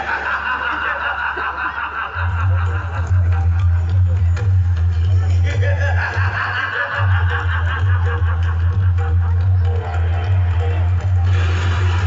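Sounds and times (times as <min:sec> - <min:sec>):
laughter: 0:00.0 - 0:03.8, 0:05.3 - 0:10.2
loud steady background noise: 0:00.0 - 0:12.0.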